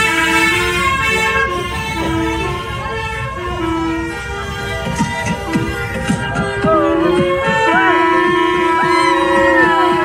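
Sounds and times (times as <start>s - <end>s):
melody of long held notes: 1.5s - 10.0s.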